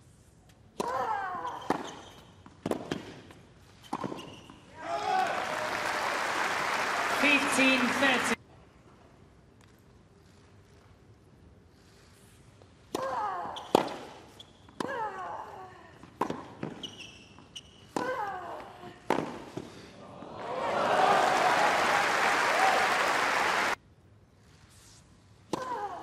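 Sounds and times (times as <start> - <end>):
racket hitting tennis ball: 0.8 - 4.3, 19.0 - 19.8
crowd applause: 5.1 - 8.4, 20.2 - 23.8.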